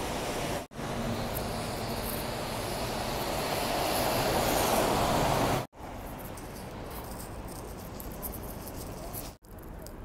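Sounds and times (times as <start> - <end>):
bus driving past on wet street: 0.0 - 5.7.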